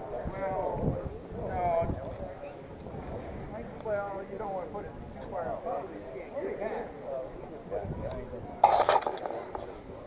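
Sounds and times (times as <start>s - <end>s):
faint background voices: 0.0s - 10.0s.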